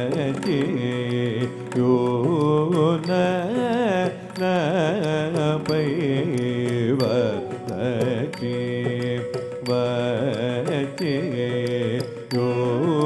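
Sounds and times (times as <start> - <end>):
person singing ornamented phrases: 0.0 - 13.0
sharp percussive clicks: 0.0 - 13.0.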